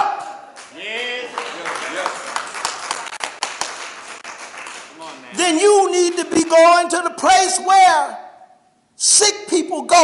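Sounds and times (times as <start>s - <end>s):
people clapping: 0.2s - 6.8s.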